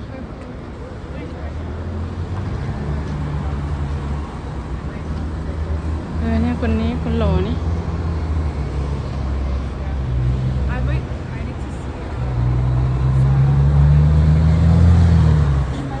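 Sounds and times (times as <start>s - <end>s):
traffic engine rumble: 0.0s - 16.0s.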